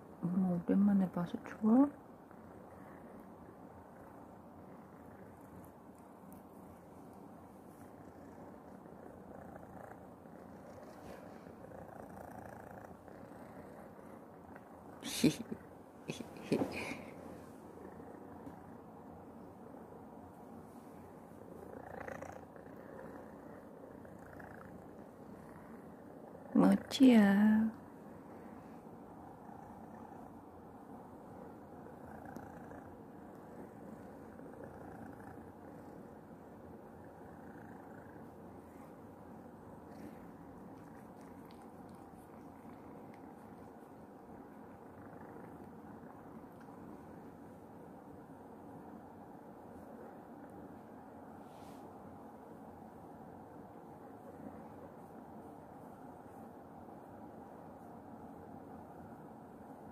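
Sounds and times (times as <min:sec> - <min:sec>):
cat purring: 0:00.0 - 0:59.9.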